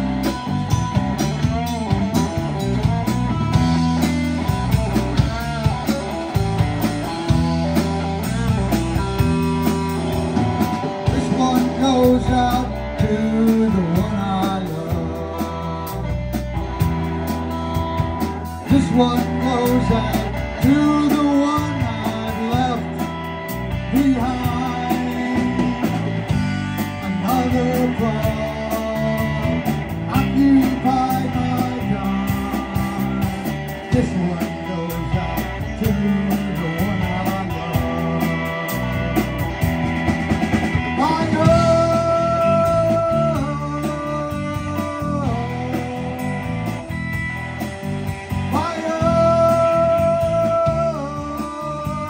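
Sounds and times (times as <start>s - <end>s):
bass guitar: 0.0s - 52.0s
drums with steady beat: 0.0s - 52.0s
electric guitar: 0.0s - 52.0s.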